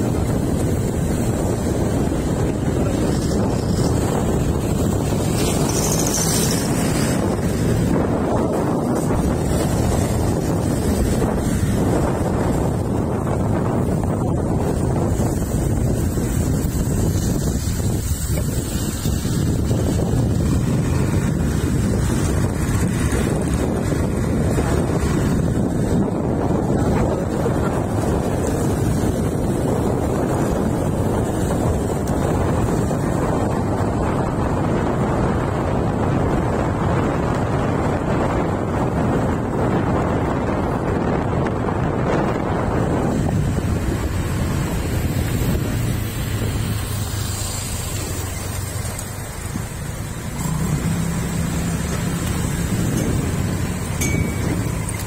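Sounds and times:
vehicle and road rumble: 0.0 - 55.0
wind buffeting microphone: 0.0 - 55.0.

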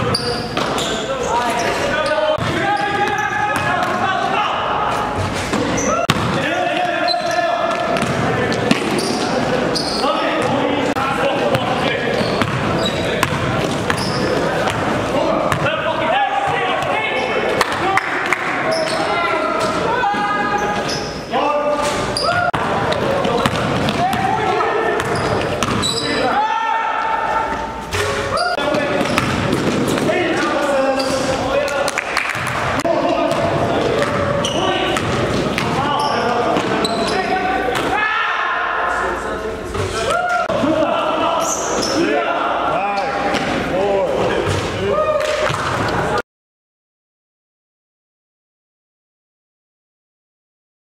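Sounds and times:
players' voices echoing: 0.0 - 46.2
basketball bouncing on hardwood floor: 8.0 - 8.8, 12.2 - 14.0, 23.0 - 24.2, 25.0 - 25.8.

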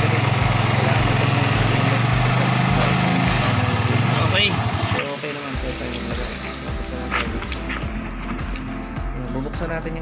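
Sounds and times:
motorcycle engine idling: 0.0 - 8.6.

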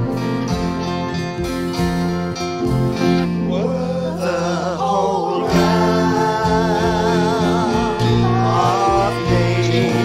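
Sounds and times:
acoustic guitar hymn: 0.0 - 10.0
person singing with vibrato: 3.2 - 10.0.

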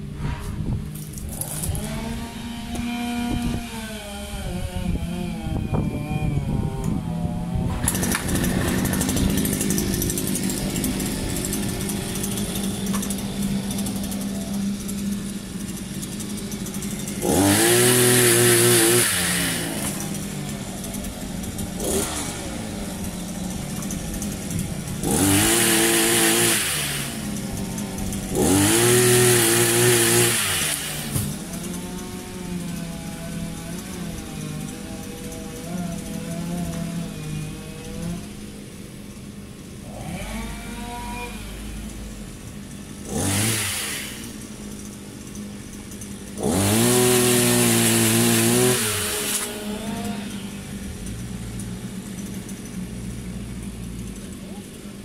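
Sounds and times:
pole chainsaw engine revving: 0.2 - 55.0.

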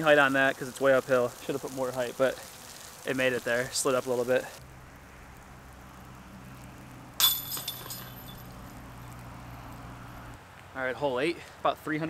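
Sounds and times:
disc striking basket chains: 7.2 - 8.7.

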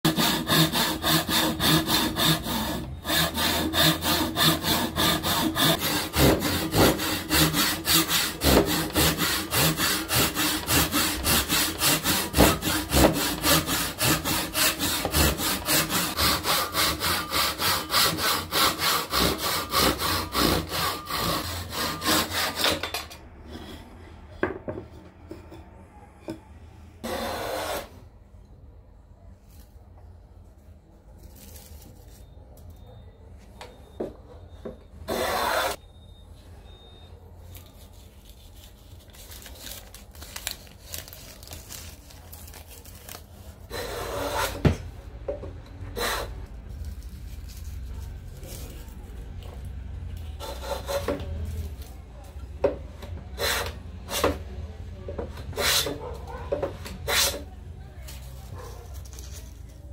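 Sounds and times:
hand saw cutting wood: 0.1 - 22.8, 27.0 - 27.9, 35.1 - 35.8, 46.0 - 46.4, 50.4 - 51.2, 53.4 - 54.4, 55.4 - 56.1, 57.0 - 57.4
saw scraping stroke: 0.1 - 22.8, 27.0 - 28.0, 35.1 - 35.8, 43.7 - 44.6, 46.0 - 46.5, 53.4 - 54.3
handling sounds: 57.8 - 59.9.

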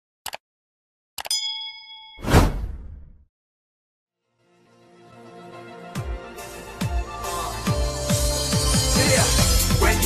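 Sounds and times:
bell-like ding: 1.3 - 2.3
whoosh: 2.2 - 3.2.

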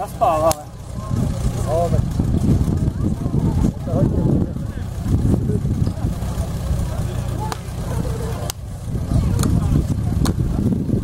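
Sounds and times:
fire pump engine running: 0.0 - 11.0
people talking: 0.0 - 11.0.

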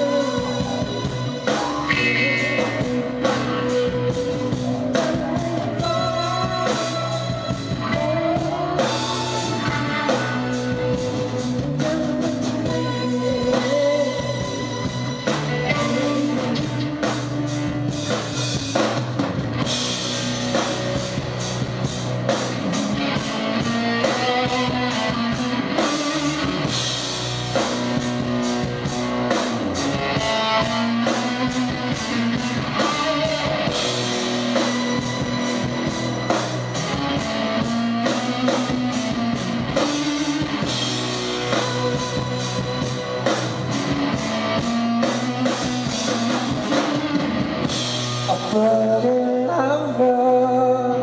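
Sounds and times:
drum kit steady beat: 0.0 - 49.0
electric guitar: 0.0 - 51.0.

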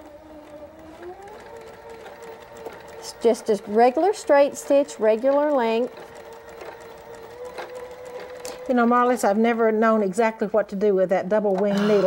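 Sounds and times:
sewing machine running: 0.0 - 10.4.

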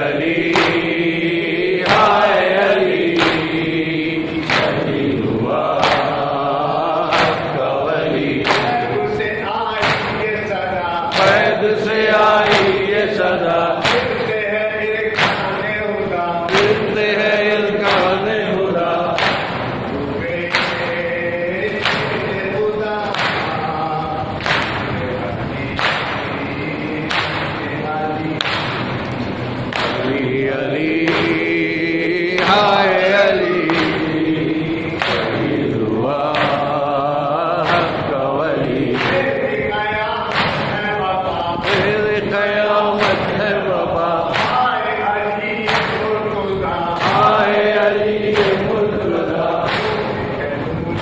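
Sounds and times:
men chanting in unison: 0.0 - 51.0
chest-beating slaps: 0.2 - 9.2, 9.8 - 14.4, 15.1 - 15.8, 16.5 - 51.0.

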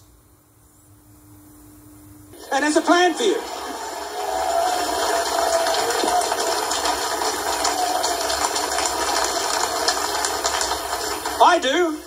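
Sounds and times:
audience applauding: 2.4 - 12.0.

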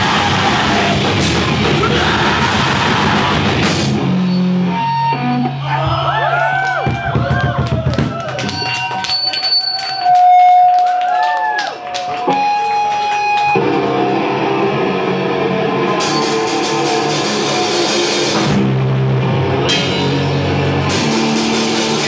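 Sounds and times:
drum and cymbal hits: 0.0 - 4.1, 19.7 - 22.0
bending electric guitar notes: 0.0 - 6.2, 12.2 - 22.0
heavy rock band playing: 0.0 - 6.2, 12.1 - 22.0.

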